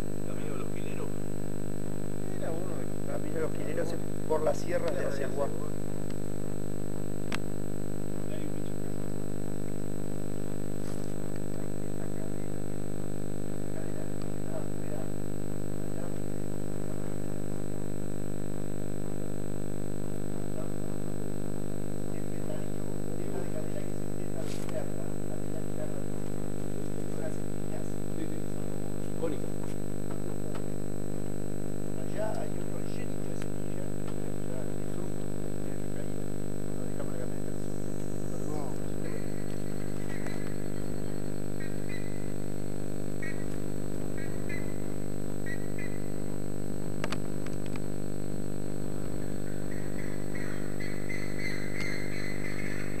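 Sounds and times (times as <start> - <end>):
faint chirps: 32.0 - 46.4, 48.9 - 53.0.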